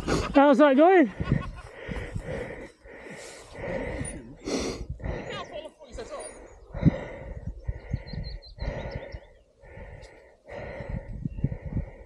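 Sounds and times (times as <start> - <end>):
person breathing heavily: 1.1 - 12.0.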